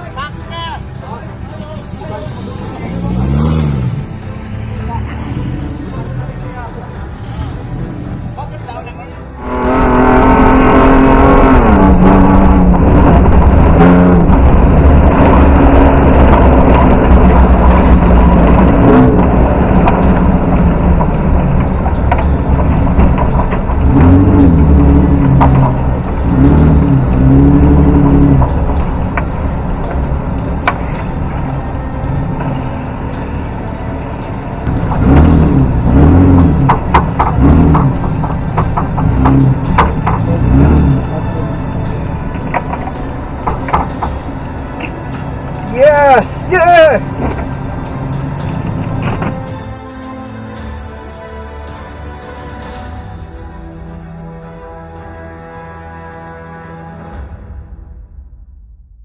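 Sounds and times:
music playing: 0.0 - 58.7
rally car engine revving: 1.8 - 49.9.

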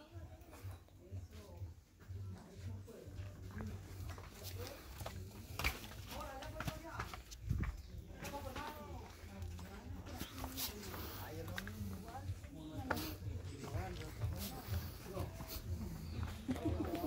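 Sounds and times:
people chattering: 0.0 - 17.0
footsteps on rocky path: 0.5 - 17.0.

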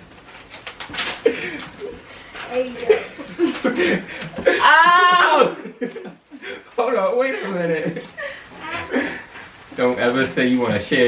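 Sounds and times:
group of people laughing: 2.9 - 6.6.

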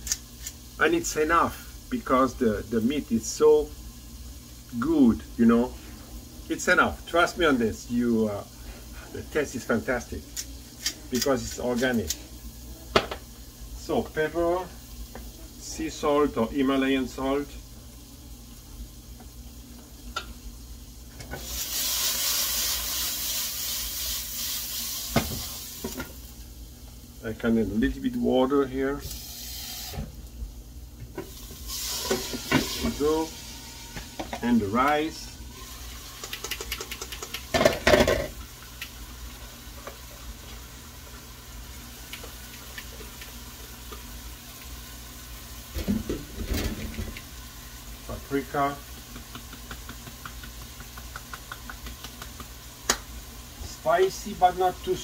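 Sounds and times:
vegetables sizzling in a skillet: 0.0 - 55.0
hiss of escaping steam: 21.3 - 26.0, 29.0 - 30.1, 31.2 - 36.3.

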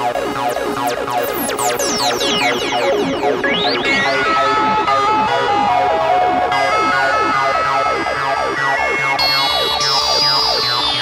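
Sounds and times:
trance music with synthesizers: 0.0 - 11.0.

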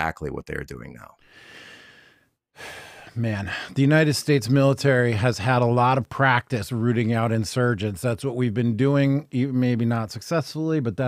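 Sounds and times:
breath at close microphone: 1.2 - 3.7.

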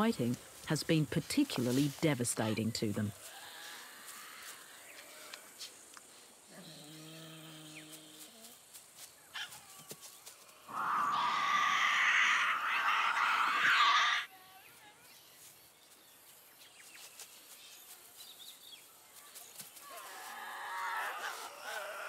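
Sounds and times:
harsh animal screech: 10.7 - 14.3.

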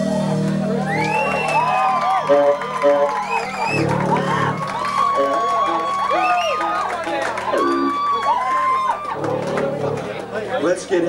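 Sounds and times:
audience whooping and cheering: 0.6 - 10.4
electric guitars ringing out: 3.7 - 10.5.

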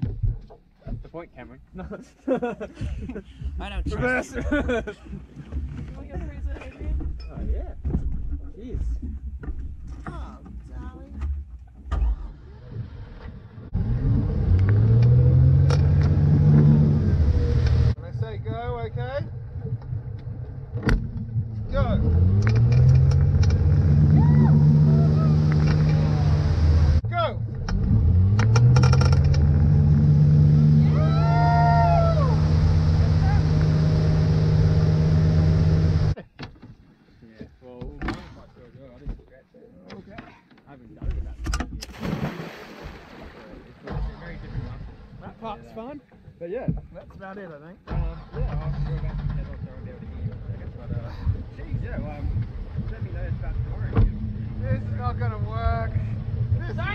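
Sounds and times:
boat engine revving: 11.8 - 18.0, 19.3 - 36.2, 47.9 - 56.9
water noise: 19.3 - 27.0, 41.8 - 46.3.

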